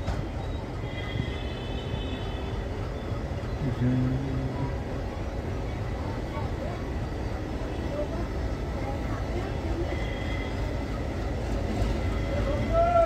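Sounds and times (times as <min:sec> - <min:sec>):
train wheels rumbling on rails: 0:00.0 - 0:13.0.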